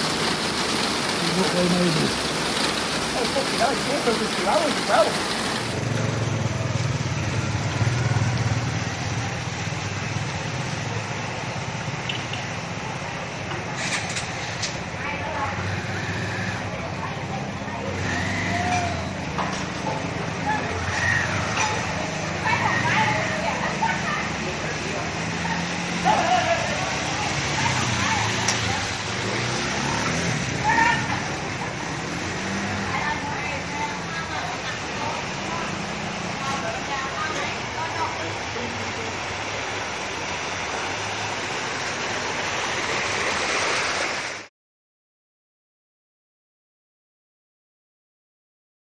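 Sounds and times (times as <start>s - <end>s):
indistinct voices: 0.0s - 5.8s
steady wash of water noise: 0.0s - 6.4s, 21.8s - 44.5s.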